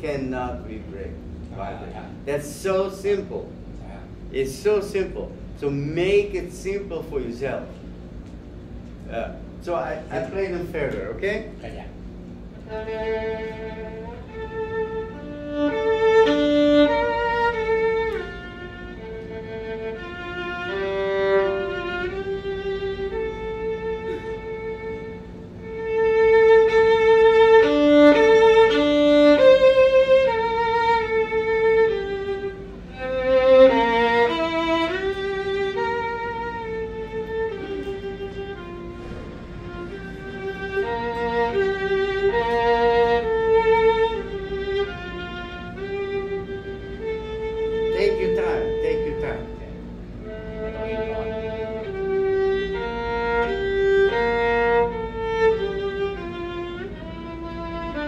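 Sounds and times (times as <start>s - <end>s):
solo violin melody: 12.4s - 58.0s.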